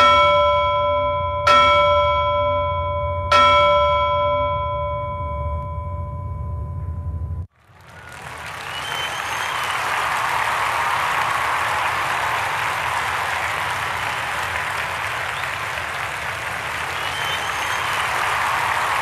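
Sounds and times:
bell-like chime ringing: 0.0s - 7.4s
low hum: 5.5s - 7.5s
applause: 7.5s - 19.0s.

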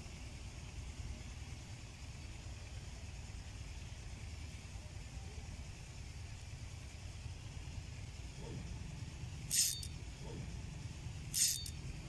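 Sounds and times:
fishing reel metallic clinking: 9.4s - 10.2s, 11.1s - 12.0s.

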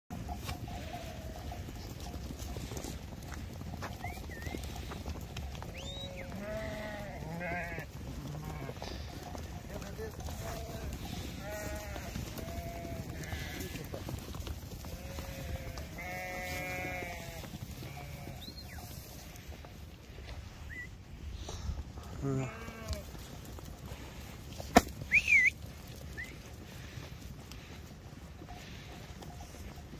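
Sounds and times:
sheep bleating: 5.9s - 14.1s, 14.8s - 19.5s, 22.1s - 23.1s.

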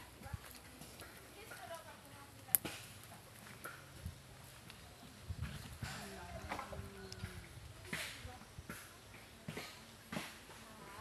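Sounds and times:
footsteps on dry leaf litter: 0.0s - 7.8s.

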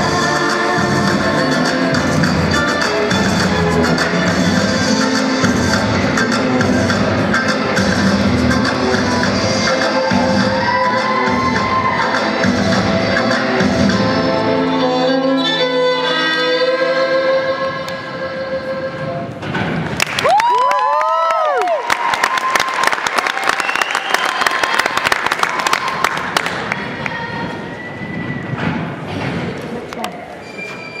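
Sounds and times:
high cheers: 10.4s - 12.3s, 20.0s - 27.4s
violin music: 14.1s - 19.2s
audience applauding: 19.9s - 26.9s.

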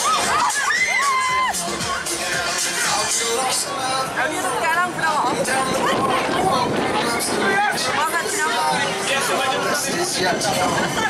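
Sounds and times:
riders screaming and shouting: 0.0s - 1.8s.

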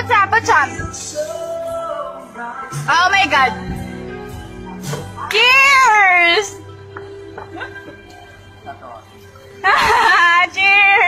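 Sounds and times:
background music: 0.0s - 11.0s
woman wailing: 9.6s - 10.4s.

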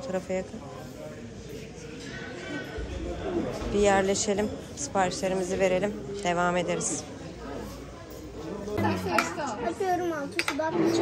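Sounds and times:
indistinct voices talking: 8.8s - 9.9s.

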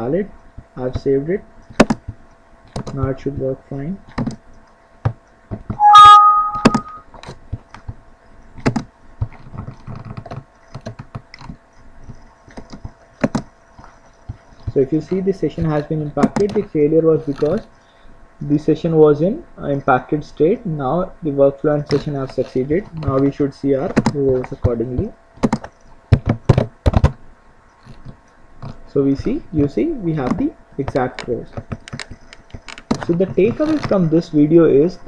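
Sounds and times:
keyboard and mouse clicks: 16.2s - 16.7s.

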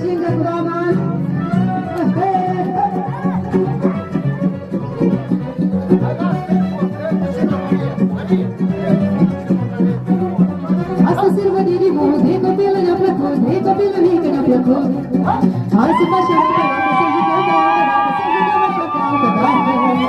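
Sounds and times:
lively folk dance music: 0.0s - 20.0s.

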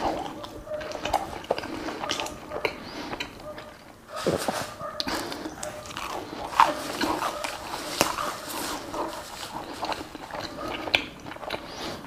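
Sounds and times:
man chewing food: 0.0s - 12.0s.

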